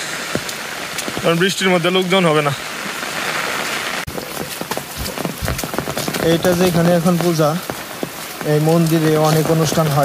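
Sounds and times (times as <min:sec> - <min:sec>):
steady rain hiss: 0:00.0 - 0:10.0
person speaking: 0:06.1 - 0:07.7.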